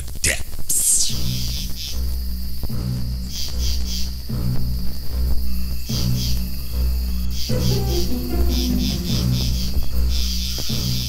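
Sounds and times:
high-pitched chirring: 0:07.5 - 0:09.9
low sustained bass notes: 0:07.5 - 0:10.2.

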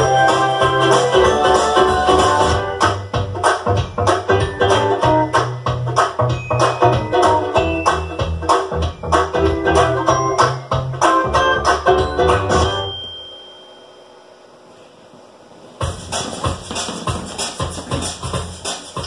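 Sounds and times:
instrumental music with beat and bass: 0:00.0 - 0:13.0, 0:15.8 - 0:19.0.

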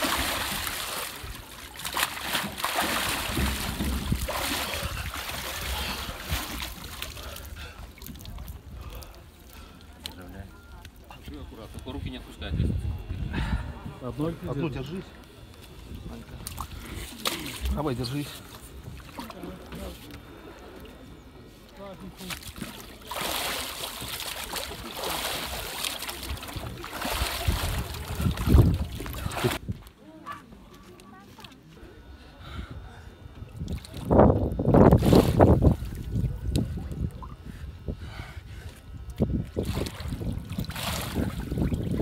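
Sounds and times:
water splashing and sloshing: 0:00.0 - 0:12.2, 0:14.7 - 0:30.0, 0:33.4 - 0:37.5, 0:38.6 - 0:42.0.

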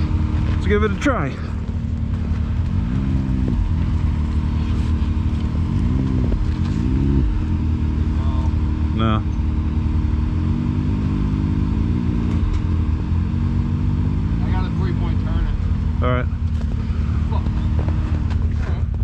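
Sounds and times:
engine idling and revving: 0:00.0 - 0:19.0.

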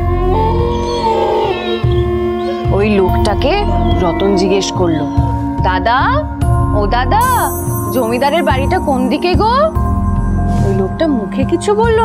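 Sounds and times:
low background music: 0:00.0 - 0:12.0.

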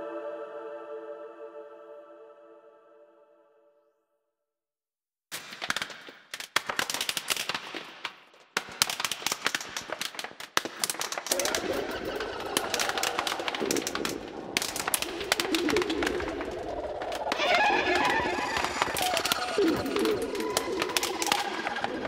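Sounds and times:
rapid electronic crackling clicks: 0:05.4 - 0:22.0.

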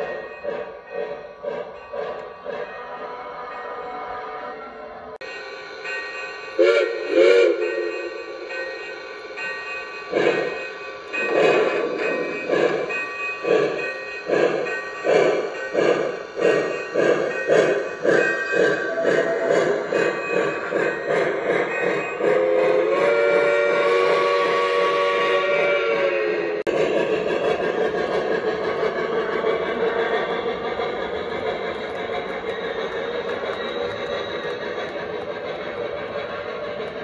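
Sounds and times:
steam chuffing: 0:00.0 - 0:03.5, 0:05.2 - 0:37.0
model train whistle: 0:06.6 - 0:08.1, 0:22.2 - 0:26.6.

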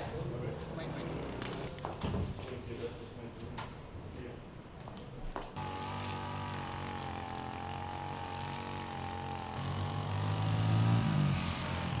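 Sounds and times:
engine running steadily: 0:05.6 - 0:12.0.

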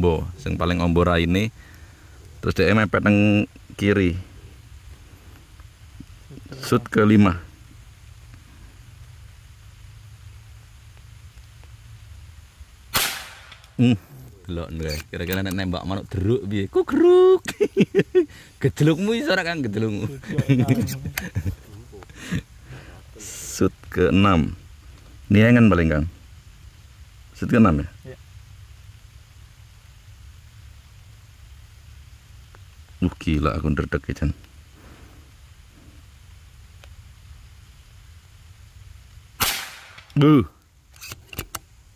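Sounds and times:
faint hiss: 0:00.0 - 0:41.9
low steady rumble: 0:00.0 - 0:41.9
air rifle shot: 0:12.9 - 0:13.7, 0:39.4 - 0:40.1
faint click: 0:36.8 - 0:37.0.

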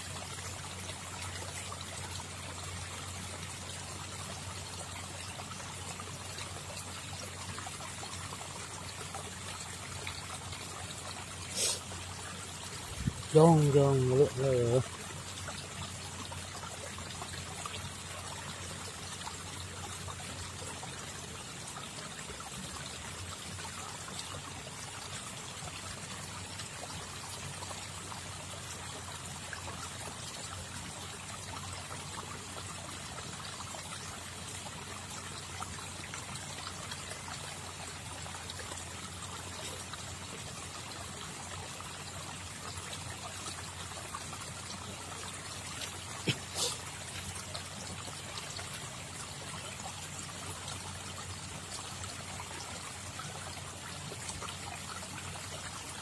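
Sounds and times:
water trickling: 0:00.0 - 0:56.0.

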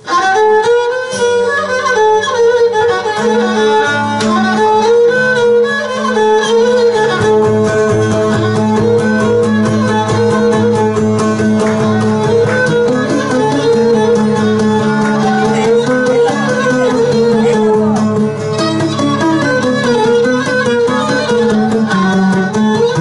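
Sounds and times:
bowed lyra melody: 0:00.0 - 0:23.0
strummed lute accompaniment: 0:00.0 - 0:23.0.

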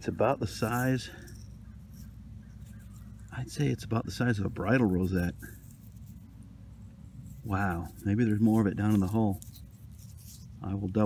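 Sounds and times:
faint steady low hum: 0:00.0 - 0:11.0.

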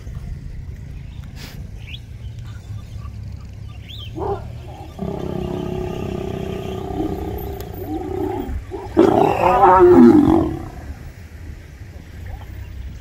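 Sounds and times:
lion growling: 0:04.2 - 0:11.0.

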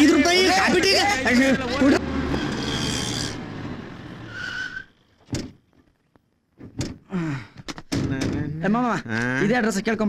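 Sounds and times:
truck engine rumble: 0:00.0 - 0:05.8
tyre screech: 0:02.2 - 0:03.5, 0:04.2 - 0:05.2.

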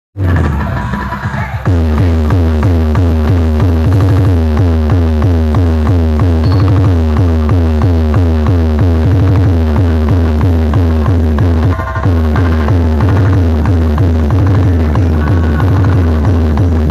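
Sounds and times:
electronic dance music heavy bass: 0:00.2 - 0:16.9
fast repeating beat: 0:00.2 - 0:16.9.

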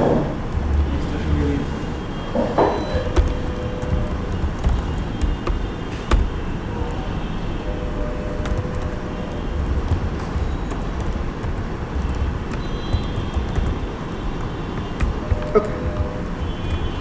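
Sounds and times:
computer keyboard clicks: 0:03.0 - 0:06.4, 0:08.4 - 0:16.9.

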